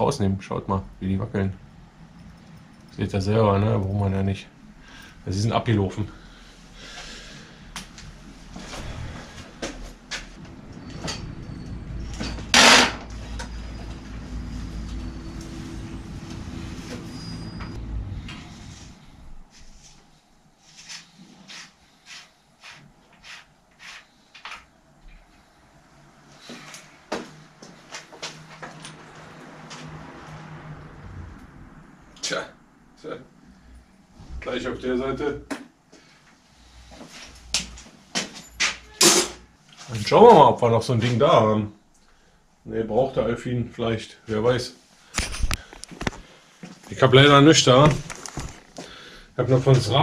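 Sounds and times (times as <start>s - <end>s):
loud metal clatter: 10.8s - 13.2s.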